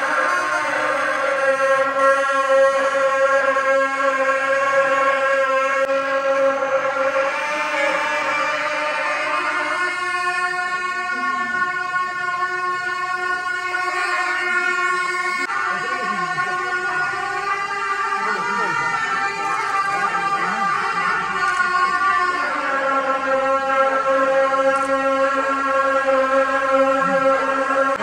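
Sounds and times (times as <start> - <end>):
double-reed horns playing: 0.0 - 28.0.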